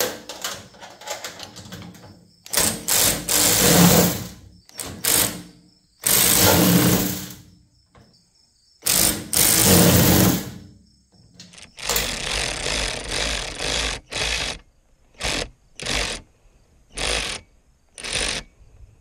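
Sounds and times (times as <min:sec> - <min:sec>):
cordless ratchet motor spinning: 0:02.5 - 0:05.4, 0:06.0 - 0:07.4, 0:08.8 - 0:10.5, 0:11.7 - 0:14.6, 0:15.2 - 0:16.2, 0:16.9 - 0:18.5.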